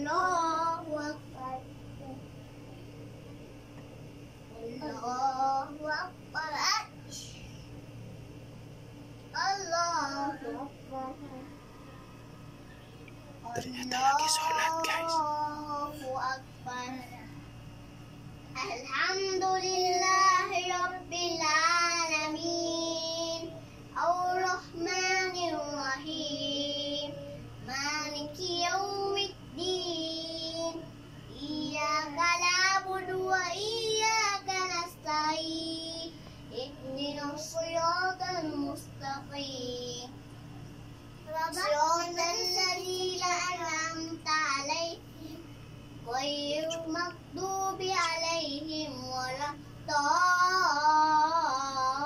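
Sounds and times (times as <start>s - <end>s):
child chanting verses: 13.4s - 17.2s, 41.3s - 45.4s.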